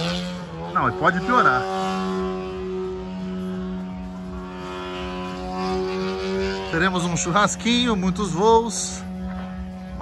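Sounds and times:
small engine humming steadily: 0.0s - 10.0s.

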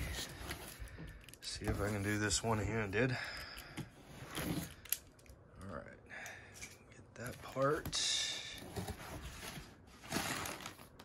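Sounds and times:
cardboard box scraping against cardboard: 8.6s - 10.8s.

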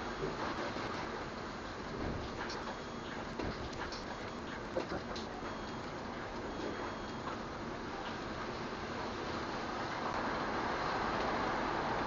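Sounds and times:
steady rain hiss: 7.4s - 12.0s
small drips and ticks: 9.9s - 12.0s.

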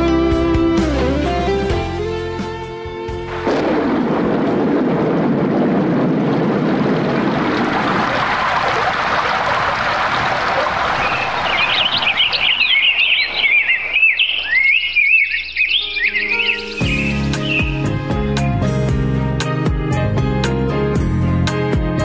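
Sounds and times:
steady rushing noise: 3.4s - 11.7s
birds chirping and warbling: 10.9s - 17.9s.

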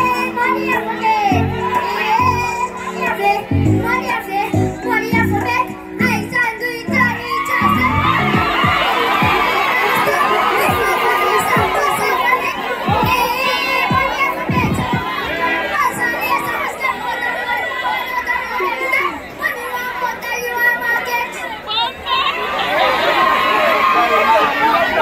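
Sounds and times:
crowd cheering and screaming: 0.0s - 25.0s
music with heavy bass beat: 7.6s - 9.6s, 10.7s - 11.0s, 11.6s - 12.0s, 12.9s - 15.1s.

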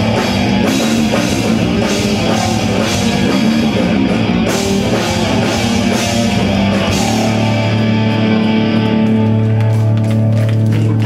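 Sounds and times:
live rock band playing loudly: 0.0s - 11.0s.

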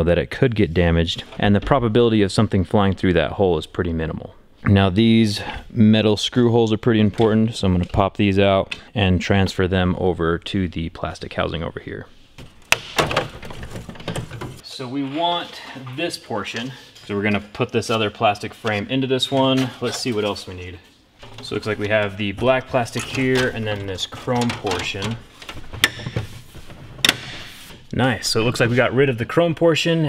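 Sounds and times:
plastic parts clicking and rattling: 12.4s - 14.6s.

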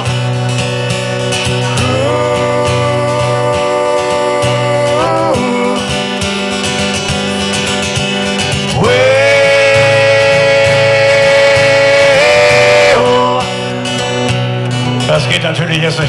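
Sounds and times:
acoustic guitar chords: 0.0s - 16.0s
man singing: 0.9s - 6.7s, 8.5s - 13.8s.

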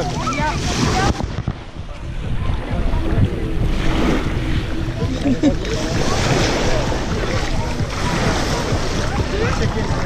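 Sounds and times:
small waves on shore: 0.0s - 10.0s
wind buffeting microphone: 0.0s - 10.0s.

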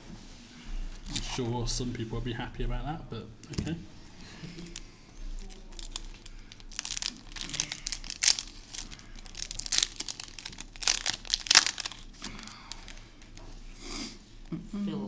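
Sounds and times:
foil wrapper tearing and crinkling: 5.4s - 13.4s.

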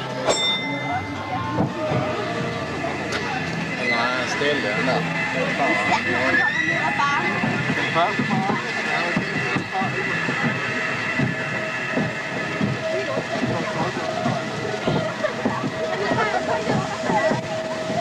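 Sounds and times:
roller coaster lift clatter: 0.0s - 18.0s
steady hum: 0.0s - 18.0s.

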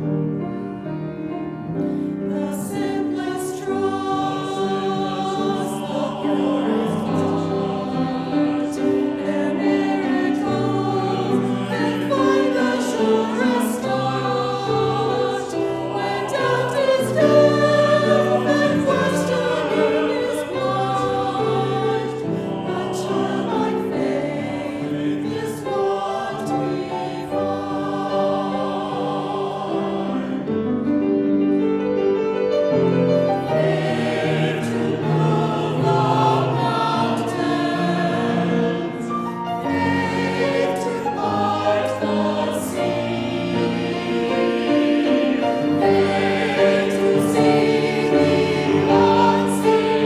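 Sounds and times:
choir singing: 0.0s - 50.0s.

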